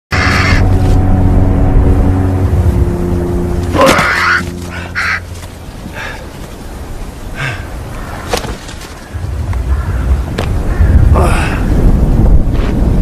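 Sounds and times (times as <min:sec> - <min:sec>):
crow cawing: 0:00.1 - 0:00.7, 0:03.8 - 0:05.3, 0:07.4 - 0:11.1
low music drone: 0:00.1 - 0:07.8.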